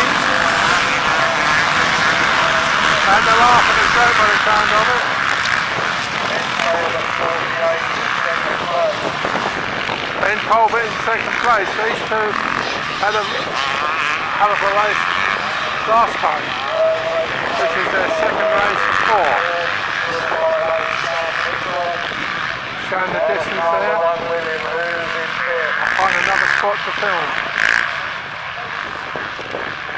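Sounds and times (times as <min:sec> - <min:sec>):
motocross bikes revving past: 0:00.0 - 0:29.9.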